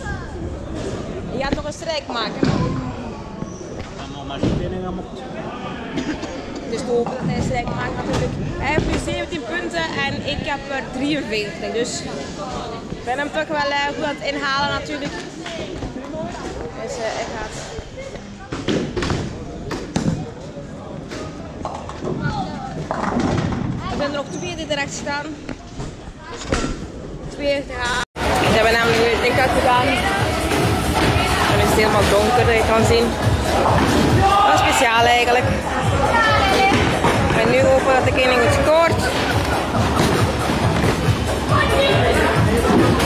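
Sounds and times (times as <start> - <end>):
voices in a hall: 0.0 - 43.0
people talking: 27.4 - 43.0.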